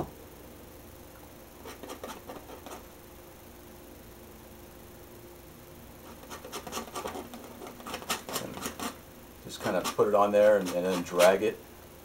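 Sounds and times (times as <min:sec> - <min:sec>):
palette knife scraping paint: 0:01.6 - 0:02.8, 0:06.1 - 0:09.0, 0:09.6 - 0:11.5.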